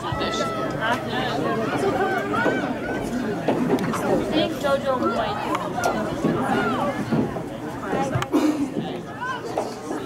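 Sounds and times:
people chattering: 0:00.0 - 0:10.0.

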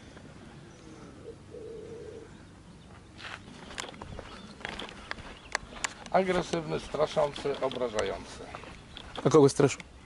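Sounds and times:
bird calling low notes: 0:00.0 - 0:06.1.

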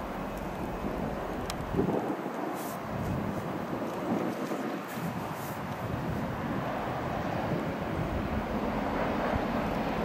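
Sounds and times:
diesel locomotive engine running: 0:00.0 - 0:01.8.

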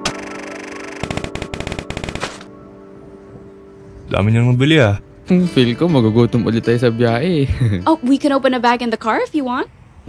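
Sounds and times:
rapid sharp clicks: 0:00.0 - 0:02.5.

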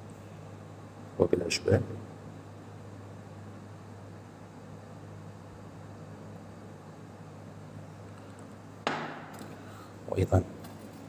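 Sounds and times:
room noise hum and hiss: 0:00.0 - 0:11.0
sharp knock: 0:08.8 - 0:09.4.

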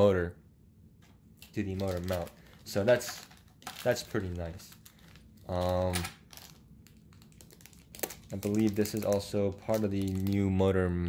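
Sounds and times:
plastic bag crinkling: 0:01.4 - 0:10.6.

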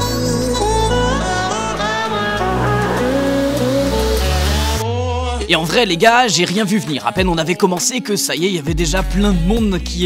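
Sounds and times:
melodic tune over bass notes: 0:00.2 - 0:04.8.

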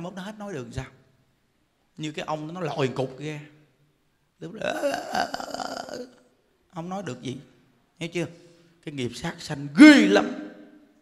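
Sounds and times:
man making guttural sound: 0:04.5 - 0:06.2.

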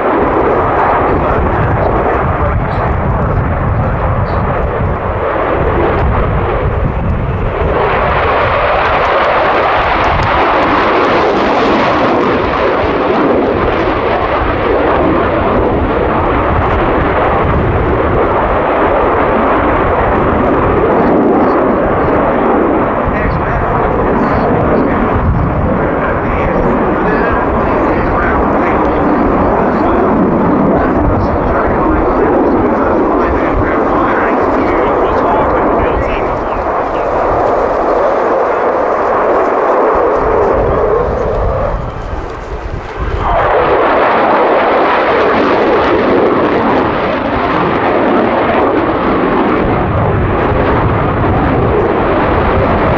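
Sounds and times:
jet engine roar: 0:00.0 - 0:52.9.

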